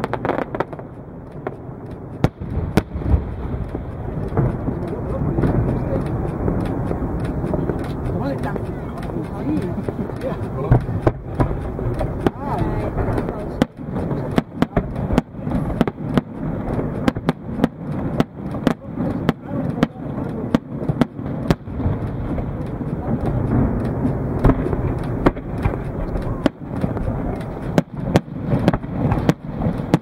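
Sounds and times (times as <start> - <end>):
firework shells bursting: 0.0 - 30.0.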